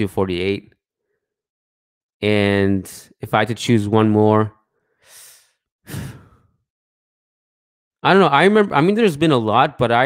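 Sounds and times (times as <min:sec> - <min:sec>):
man sighing: 0:05.9 - 0:06.5.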